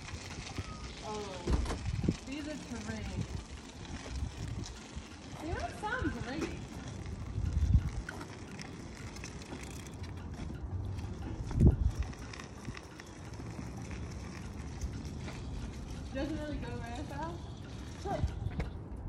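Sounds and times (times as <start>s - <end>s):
small wheels rolling over pavement: 0.0s - 19.0s.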